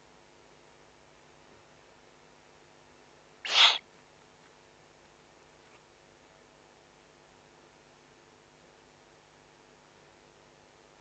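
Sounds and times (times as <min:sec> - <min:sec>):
owl chick hissing call: 0:03.4 - 0:03.8.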